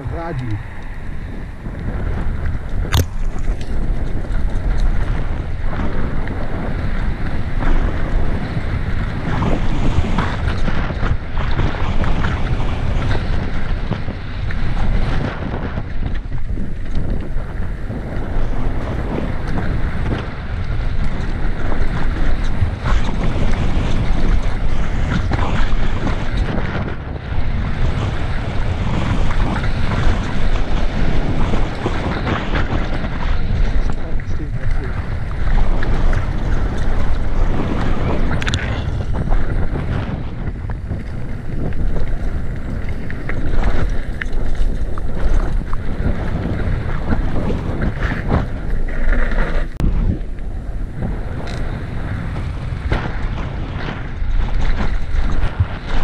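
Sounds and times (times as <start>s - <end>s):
bike tyres rolling over dirt: 0.0s - 56.0s
wind buffeting microphone: 0.0s - 56.0s.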